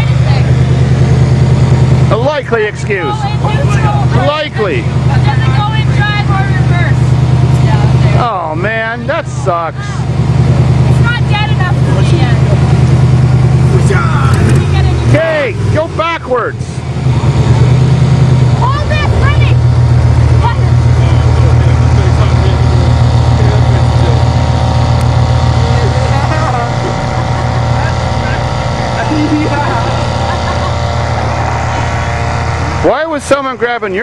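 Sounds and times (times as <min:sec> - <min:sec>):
van engine idling: 0:00.0 - 0:34.0.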